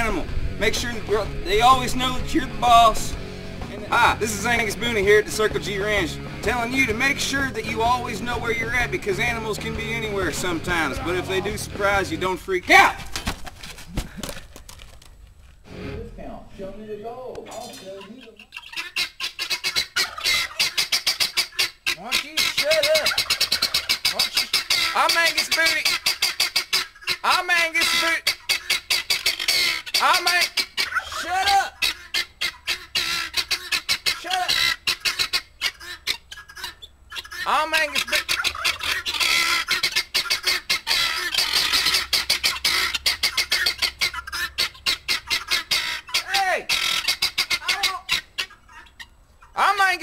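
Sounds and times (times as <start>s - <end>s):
poultry calling harshly: 17.5s - 50.0s.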